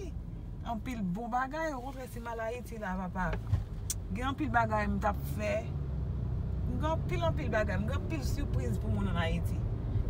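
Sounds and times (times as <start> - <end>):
car cabin rumble: 0.0 - 5.8.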